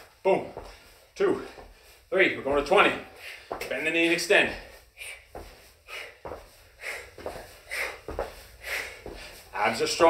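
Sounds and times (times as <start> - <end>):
feet thudding on carpet: 0.4 - 3.8, 5.3 - 6.6, 7.2 - 9.5
forceful breaths out: 4.6 - 9.5.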